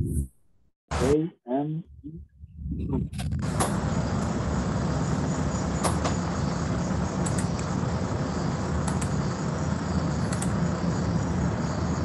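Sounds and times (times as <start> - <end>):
low rumbling background noise: 1.9 - 12.0.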